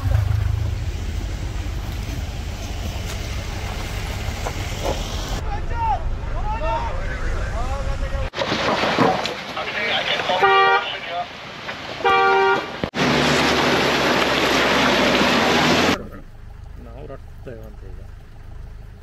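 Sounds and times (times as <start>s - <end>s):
tyres splashing through water: 8.2s - 19.0s
car horn honks: 10.3s - 11.0s, 12.0s - 12.8s.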